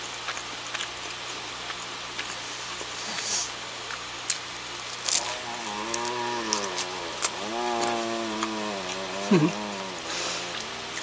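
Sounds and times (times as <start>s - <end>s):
chewing bread: 0.0s - 11.0s
person humming: 5.1s - 11.0s.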